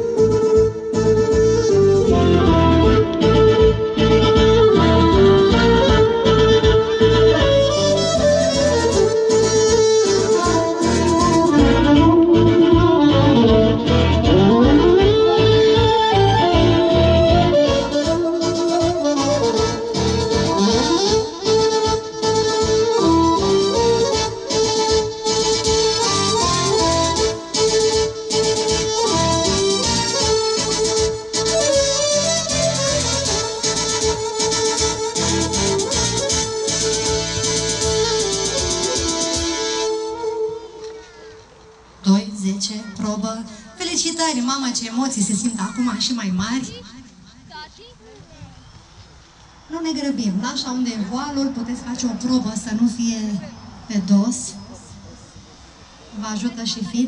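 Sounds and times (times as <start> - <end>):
live band playing folk tune: 0.0 - 42.0.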